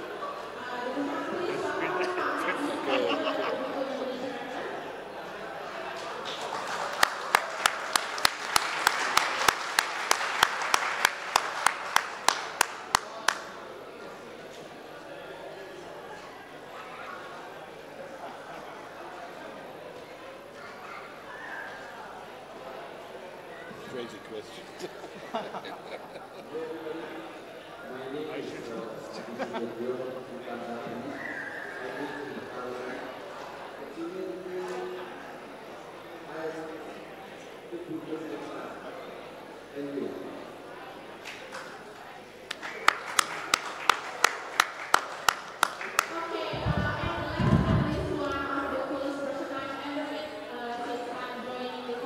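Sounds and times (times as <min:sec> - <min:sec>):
faint voices: 0:00.0 - 0:08.3, 0:45.8 - 0:52.0
faint indistinct voices: 0:00.0 - 0:10.2, 0:11.1 - 0:52.0
large hall room noise: 0:00.0 - 0:52.0
slow hand clapping: 0:06.3 - 0:13.5, 0:42.5 - 0:46.2.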